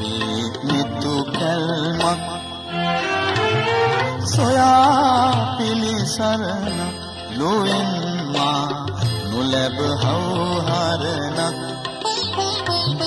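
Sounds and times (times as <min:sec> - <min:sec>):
man singing through pa: 0:00.0 - 0:12.0
instrumental accompaniment: 0:00.0 - 0:13.0.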